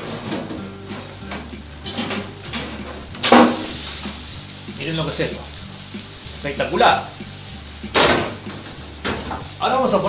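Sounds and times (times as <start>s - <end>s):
oven door squeak: 0.0s - 1.1s
metal roasting tray clattering: 0.0s - 5.0s, 7.8s - 10.0s
food sizzling: 0.0s - 10.0s.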